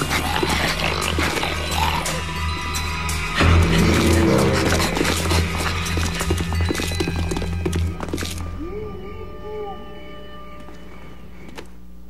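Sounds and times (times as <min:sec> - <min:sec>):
cartoon chase music: 0:00.0 - 0:10.3.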